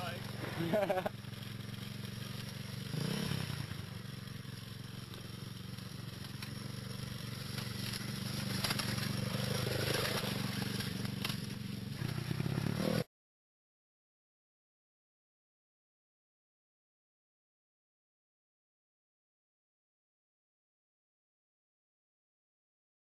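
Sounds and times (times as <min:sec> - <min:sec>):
small motorcycle engine running: 0:00.0 - 0:13.1.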